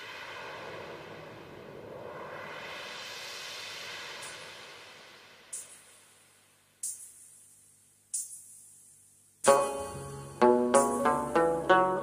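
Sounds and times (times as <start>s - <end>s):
steady hiss-like noise: 0.0s - 12.0s.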